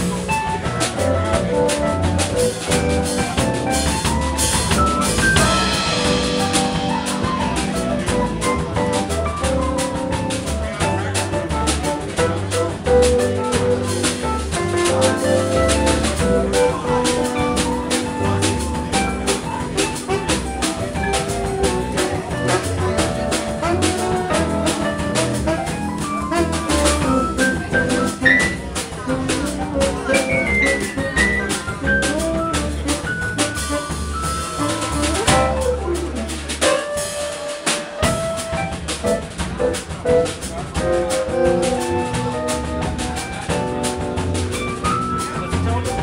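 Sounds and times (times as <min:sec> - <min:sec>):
jazz combo playing samba: 0:00.0 - 0:46.0.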